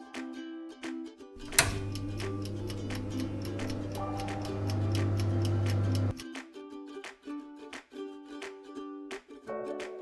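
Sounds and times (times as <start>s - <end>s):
low electric hum: 1.4s - 6.1s
oven timer ticking: 1.4s - 6.2s.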